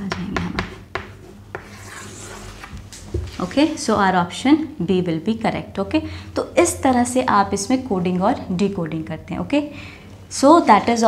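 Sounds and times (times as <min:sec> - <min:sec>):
chalk tap on a blackboard: 0:00.1 - 0:01.7
chalk scraping on a blackboard: 0:01.5 - 0:02.7.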